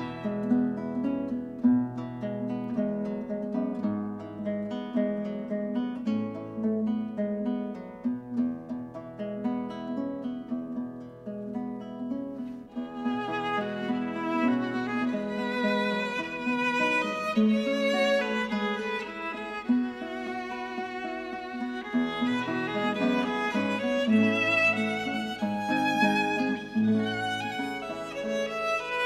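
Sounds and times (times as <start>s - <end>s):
bowed violin line: 0.0s - 1.4s, 12.7s - 29.0s
plucked acoustic guitar melody: 0.0s - 29.0s.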